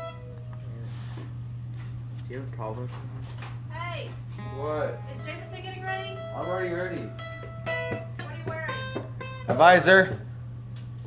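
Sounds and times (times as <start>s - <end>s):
acoustic guitar notes ringing: 0.0s - 1.1s, 4.4s - 10.4s
steady low hum: 0.0s - 11.0s.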